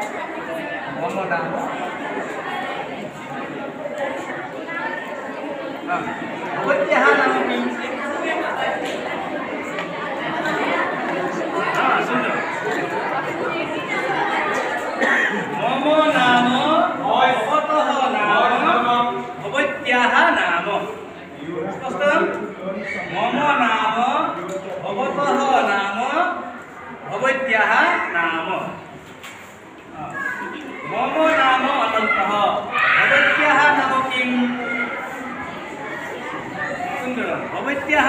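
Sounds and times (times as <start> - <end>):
children's voices chattering: 0.0 - 38.0.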